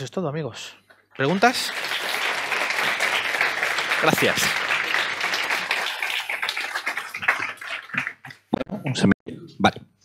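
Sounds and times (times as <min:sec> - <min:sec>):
audience applause: 0:01.2 - 0:08.4.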